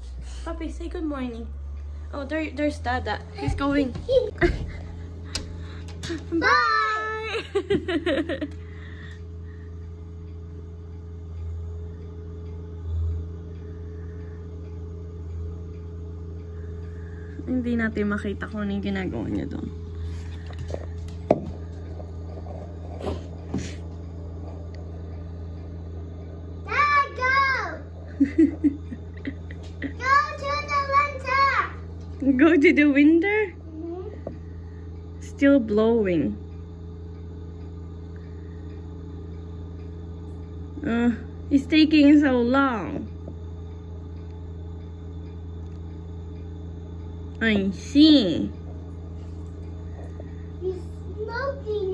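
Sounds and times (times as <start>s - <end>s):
muffled tractor engine hum: 0.0s - 51.9s.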